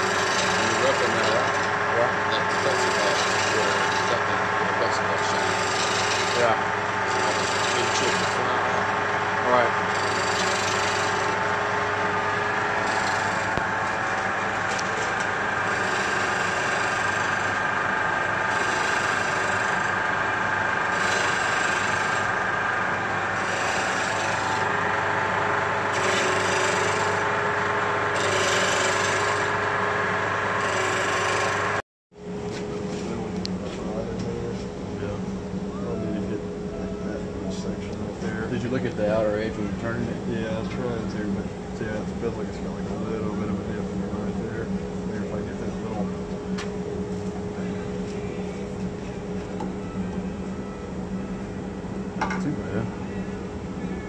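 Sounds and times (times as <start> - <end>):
turning tool rasping on wood: 0.0 - 1.8, 2.4 - 4.2, 5.2 - 8.5, 9.8 - 11.4, 12.7 - 13.6, 15.6 - 17.6, 18.4 - 20.0, 20.8 - 22.4, 23.3 - 24.7, 25.9 - 27.3, 28.1 - 29.6, 30.6 - 31.8
wood lathe motor hum: 0.0 - 31.8.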